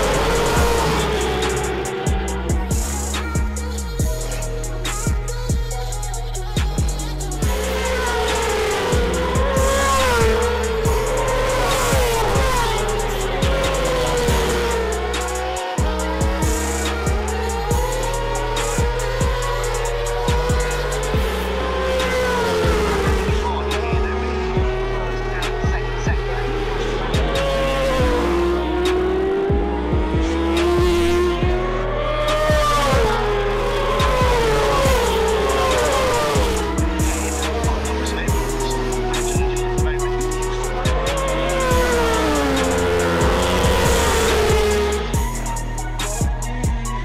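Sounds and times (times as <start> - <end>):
music with bass line and beat: 0.0 - 47.0
racing motorcycle engines revving: 0.0 - 47.0.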